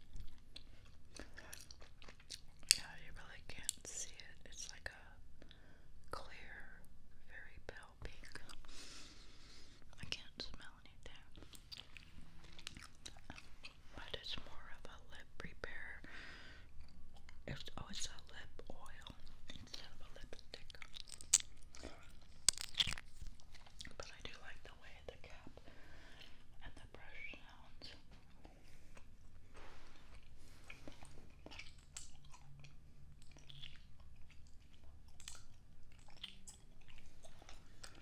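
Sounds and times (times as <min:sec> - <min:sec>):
gum chewing mouth clicks: 0:00.0 - 0:03.8, 0:11.4 - 0:13.8, 0:19.0 - 0:24.3, 0:30.2 - 0:38.0.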